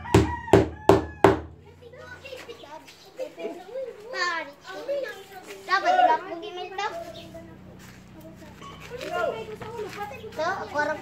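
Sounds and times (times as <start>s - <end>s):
children talking and calling out: 1.5s - 11.0s.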